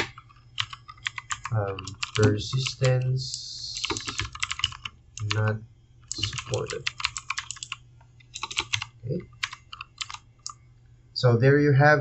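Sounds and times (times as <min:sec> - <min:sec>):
computer keyboard typing: 0:00.0 - 0:10.6.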